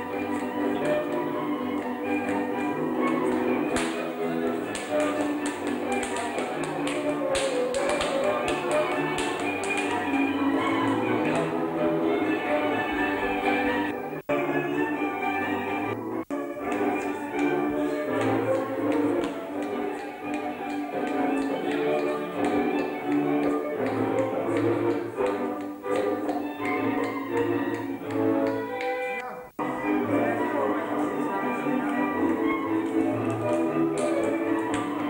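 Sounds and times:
dancer's shoes stamping on floor: 0.0 - 13.9, 16.3 - 29.2, 32.2 - 35.0
folk string band with fiddle: 0.0 - 35.0.

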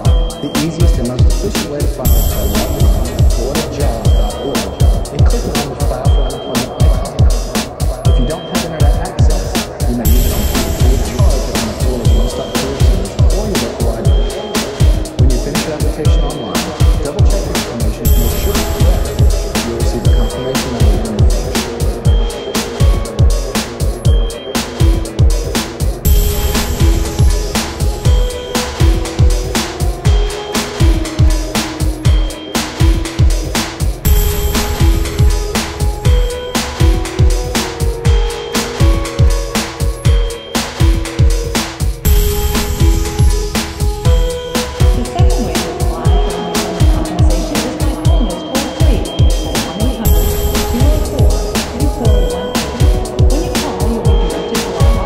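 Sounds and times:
electronic dance music: 0.0 - 55.0
held synthesizer tones: 0.0 - 55.0
hi-hat hits: 0.0 - 55.0
kick drum thumping: 0.0 - 55.0.

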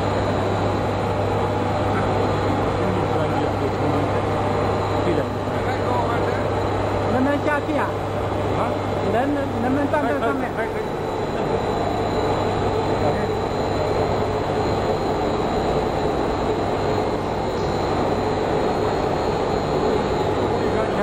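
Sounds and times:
machinery running: 0.0 - 21.0.

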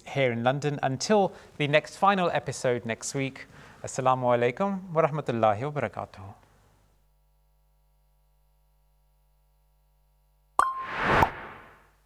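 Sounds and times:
brief tone: 10.6 - 11.8
whoosh to sharp hit: 10.8 - 11.8.

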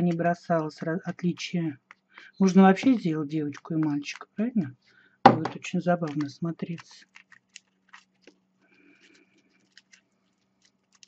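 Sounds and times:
aluminium foil crackling: 6.0 - 11.0.

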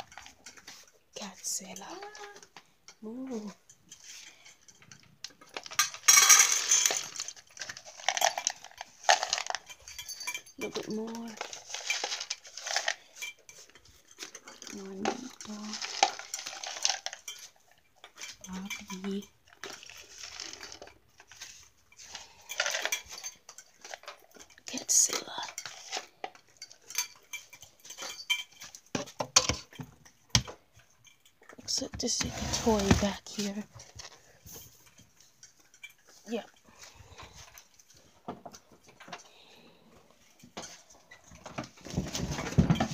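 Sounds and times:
kibble rattling into plastic bowl: 4.3 - 30.7, 40.6 - 42.9.

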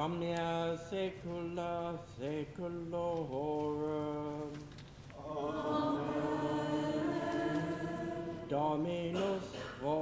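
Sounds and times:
man singing plainchant: 0.0 - 6.6, 7.4 - 10.0.

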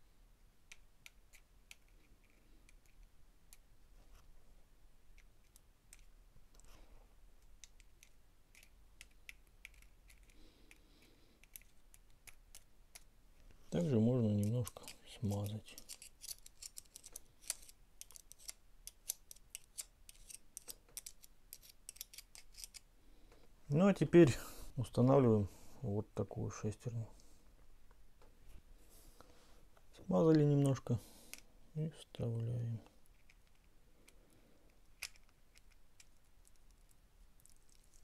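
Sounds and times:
person's voice: 13.7 - 15.8, 23.7 - 27.2, 30.0 - 31.1, 31.8 - 32.9.

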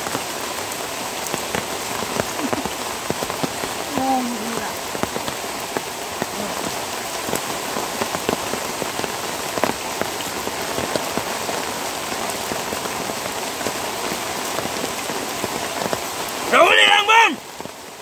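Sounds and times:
raindrops ticking close by: 0.0 - 18.0
steady rain hiss: 0.0 - 18.0.

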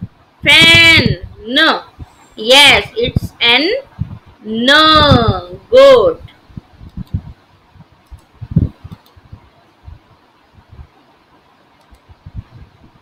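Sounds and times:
steady faint hiss: 0.0 - 13.0
soft low thumps: 6.5 - 11.0
computer mouse clicks: 6.8 - 7.2, 8.0 - 9.2, 11.8 - 12.1.

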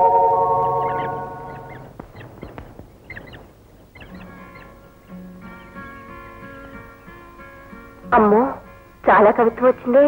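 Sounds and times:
held music chord: 0.0 - 1.8
soft sustained music notes: 0.0 - 1.9
birds chirping: 0.0 - 8.3.

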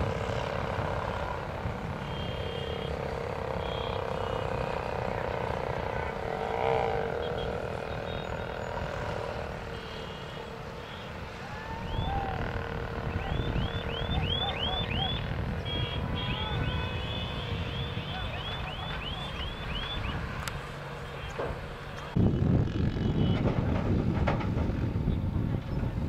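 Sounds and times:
motorcycle engines droning: 0.0 - 26.0
high rising-and-falling whistles: 13.1 - 20.2.

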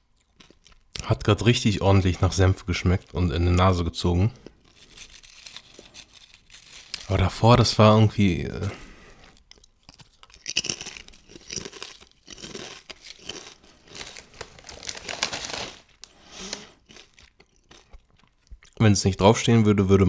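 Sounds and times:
potato chips crunching: 0.0 - 1.1, 4.3 - 18.8
plastic bag crinkling: 4.4 - 17.4.

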